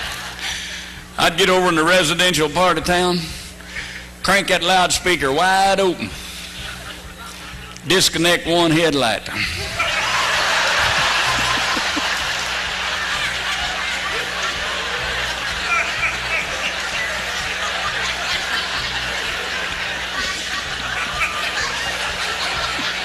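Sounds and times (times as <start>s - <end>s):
audience laughing: 6.3s - 7.9s, 9.4s - 23.0s.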